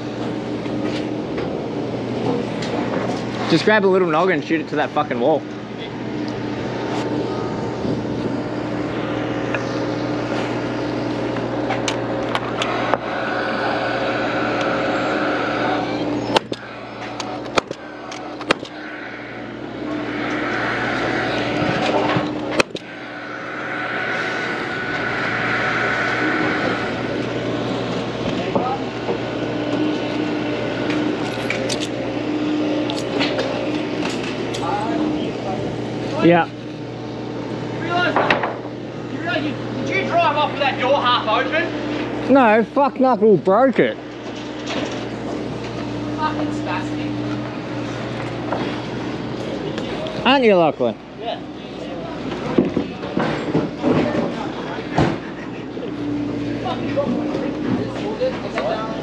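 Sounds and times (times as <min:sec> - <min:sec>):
steady site hum: 0:00.0 - 0:59.0.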